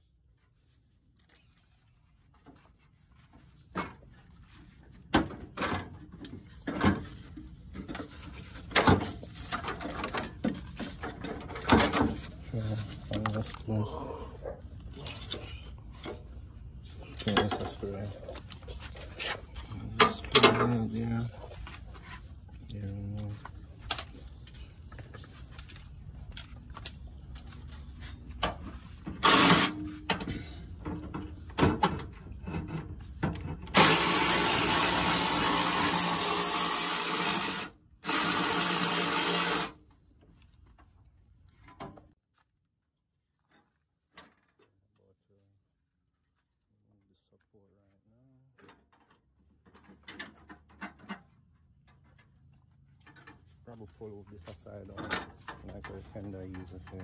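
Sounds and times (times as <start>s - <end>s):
handheld power tool running: 29.2s - 29.8s, 33.8s - 39.8s.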